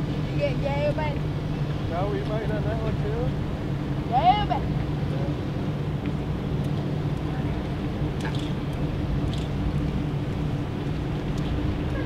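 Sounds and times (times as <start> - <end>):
ship machinery humming: 0.0 - 12.0.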